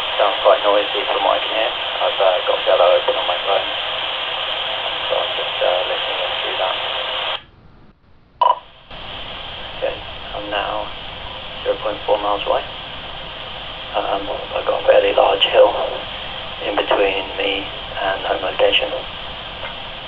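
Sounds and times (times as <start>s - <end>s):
man's voice over radio: 0.0s - 3.8s, 5.0s - 7.1s, 9.8s - 10.9s, 11.6s - 12.8s, 13.9s - 19.1s
radio hiss: 0.0s - 7.5s, 8.4s - 20.0s.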